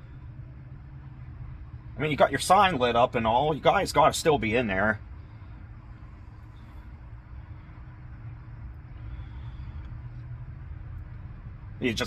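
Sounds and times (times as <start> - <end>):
distant road traffic: 0.0 - 12.0.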